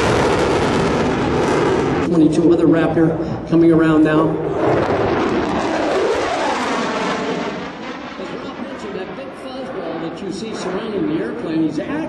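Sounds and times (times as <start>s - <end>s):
jet engine rushing pass: 0.0s - 12.0s.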